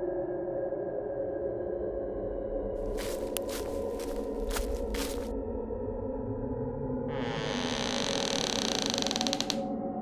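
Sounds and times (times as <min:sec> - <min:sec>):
door hinge creaking: 0:07.1 - 0:09.6.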